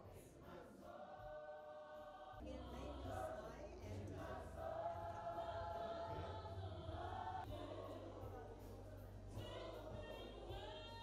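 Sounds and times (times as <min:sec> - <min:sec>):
choir singing long held notes: 0:00.0 - 0:08.6.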